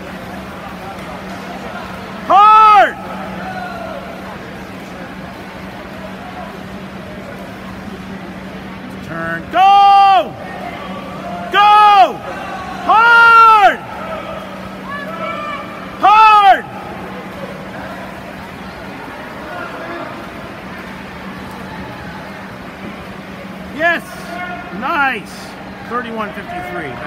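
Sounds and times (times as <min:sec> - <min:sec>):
crowd din at indoor pool: 0:00.0 - 0:27.0
low steady hum: 0:00.0 - 0:27.0
person shouting cheers: 0:14.8 - 0:16.7.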